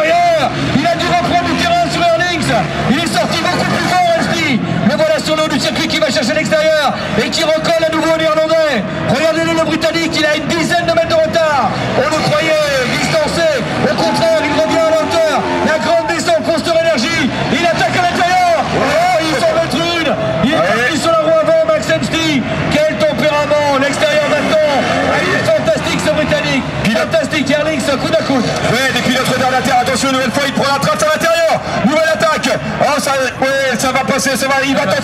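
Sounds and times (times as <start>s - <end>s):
commentator speaking: 0.0s - 35.0s
crowd chatter: 0.0s - 35.0s
motocross bike engines revving: 0.0s - 35.0s.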